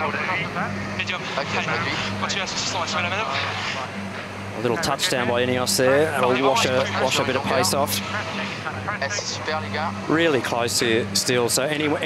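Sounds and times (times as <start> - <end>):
faint voices talking: 0.0 - 12.0
low engine-like hum: 0.0 - 12.0.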